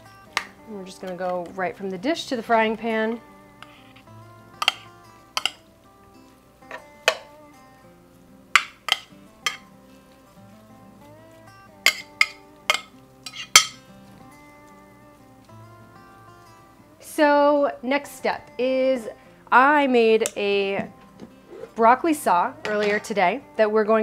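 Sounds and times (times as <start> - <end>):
background music with held notes: 0.0 - 24.0
metal utensil scraping ceramic dish: 3.6 - 5.6, 8.9 - 9.7, 11.9 - 13.8, 21.5 - 21.8.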